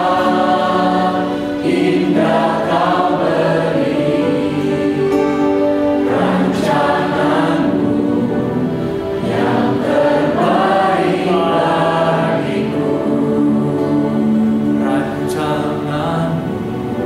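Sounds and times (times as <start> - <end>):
congregation singing: 0.0 - 17.0
piano and keyboard accompaniment: 0.0 - 17.0.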